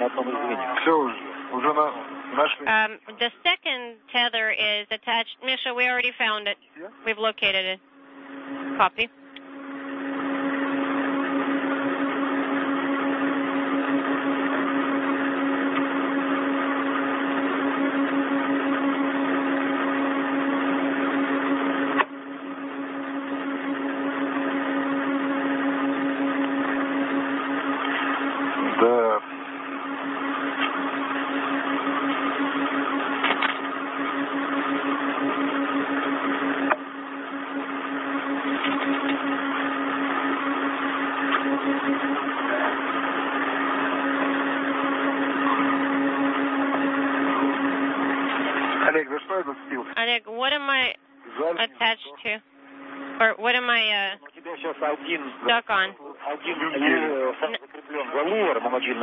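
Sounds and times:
radio channel hiss and hum: 0.0s - 7.8s, 27.8s - 29.4s, 48.3s - 52.5s, 53.1s - 59.0s.

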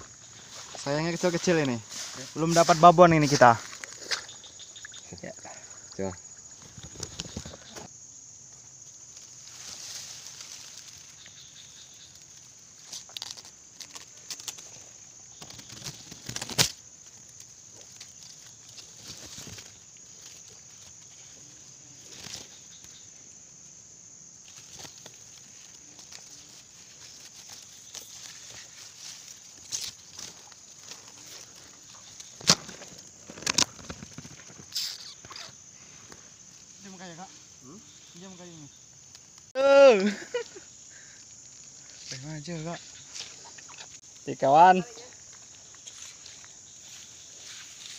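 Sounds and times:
insect chirring: 0.0s - 47.9s
reeds and grass rustling: 0.0s - 47.9s.

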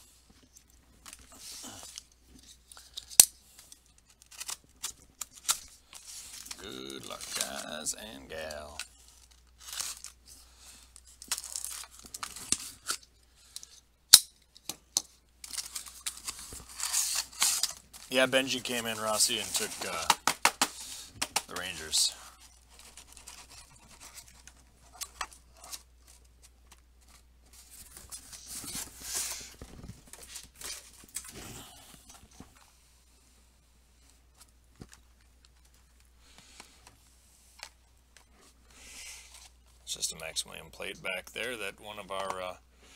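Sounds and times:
plastic wrapping crinkling: 0.3s - 13.1s, 15.4s - 31.4s
tape tearing: 4.0s - 7.8s, 9.1s - 10.2s, 15.4s - 21.9s.

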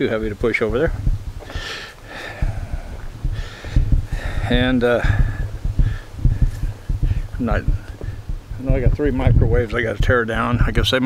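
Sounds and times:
thumping on microphone: 0.7s - 11.0s
man breathing out heavily: 1.4s - 7.4s.

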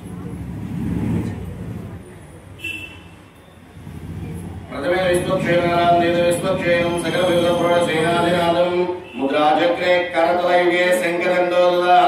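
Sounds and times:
man chanting through loudspeaker: 4.7s - 12.0s.

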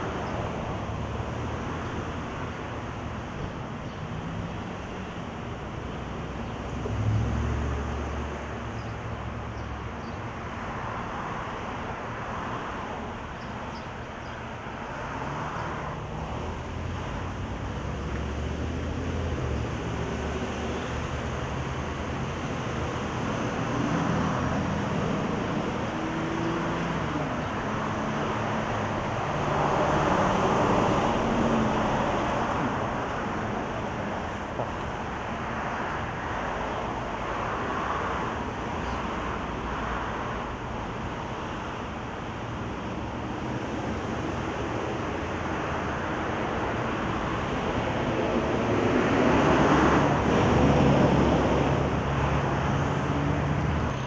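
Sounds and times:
road traffic noise: 0.0s - 54.0s
vehicles passing: 0.0s - 54.0s.

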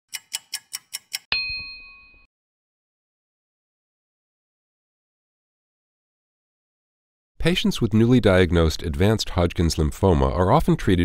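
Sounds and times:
clock ticking: 0.1s - 1.3s
bell ding: 1.3s - 2.3s.

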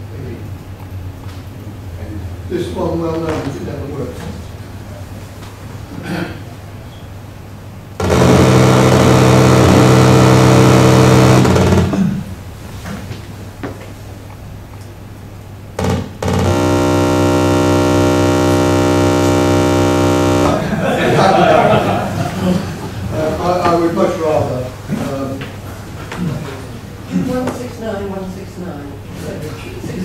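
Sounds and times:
loud electronic buzz: 8.0s - 12.4s, 15.7s - 22.0s.

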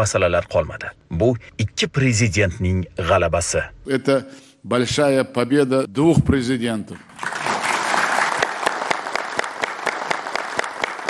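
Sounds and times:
audience applauding: 7.2s - 11.0s.

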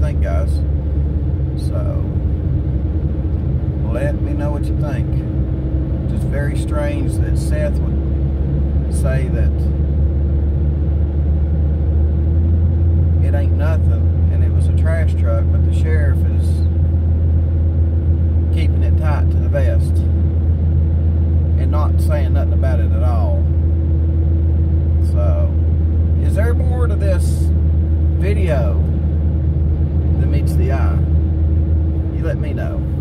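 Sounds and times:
man speaking: 0.0s - 0.7s, 1.6s - 2.2s, 3.8s - 5.3s, 6.1s - 8.0s, 8.9s - 9.7s, 13.2s - 16.7s, 18.6s - 20.1s, 21.6s - 23.4s, 25.0s - 25.6s, 26.2s - 27.5s, 28.2s - 28.9s, 30.2s - 31.1s, 32.1s - 33.0s
vehicle road and engine drone: 0.0s - 33.0s.

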